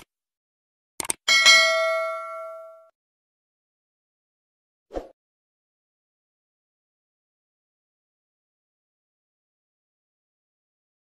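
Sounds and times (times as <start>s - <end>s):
bright bell ding: 1.3s - 2.9s.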